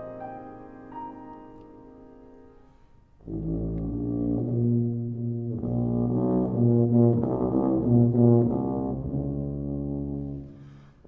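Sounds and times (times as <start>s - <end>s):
tuba low sustained notes: 3.2s - 11.0s.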